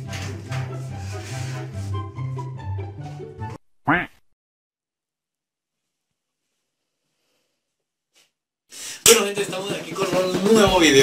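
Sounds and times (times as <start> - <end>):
background music: 0.0 - 3.6, 8.8 - 11.0
duck-like quack: 3.8 - 4.2.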